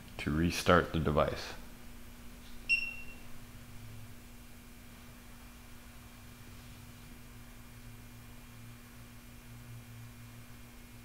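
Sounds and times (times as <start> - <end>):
faint electrical hum: 0.0 - 11.0
high electronic beep: 2.7 - 3.2.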